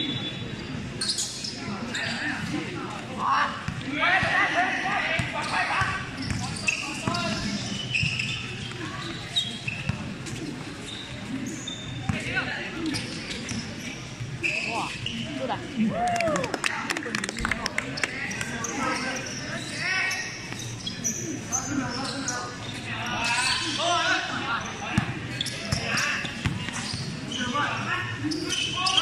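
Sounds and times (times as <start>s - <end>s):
shoes squeaking: 0.0s - 2.6s, 4.7s - 15.7s, 18.0s - 23.9s, 24.6s - 29.0s
basketball bouncing on court: 25.0s - 27.2s.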